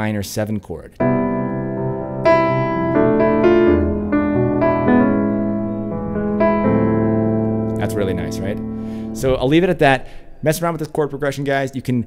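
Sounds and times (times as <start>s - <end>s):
piano keyboard chords: 1.0s - 12.0s.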